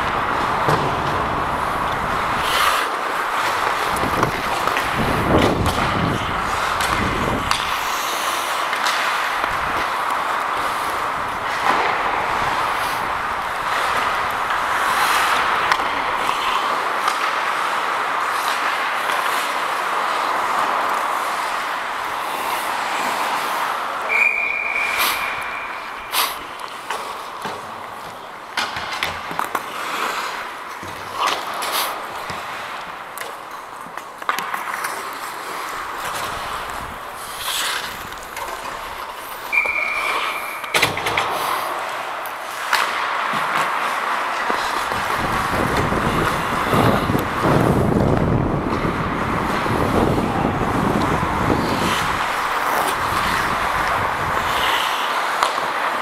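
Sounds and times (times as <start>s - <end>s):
hockey sticks and puck knocking: 0.0s - 56.0s
ice skates scraping on ice: 0.0s - 56.0s
referee's whistle: 24.1s - 25.9s, 39.5s - 40.8s.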